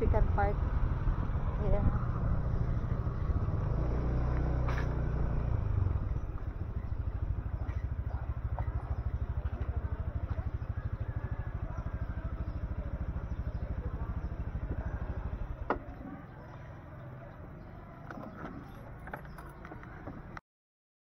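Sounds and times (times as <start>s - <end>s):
small motorcycle engine idling: 0.0s - 20.4s.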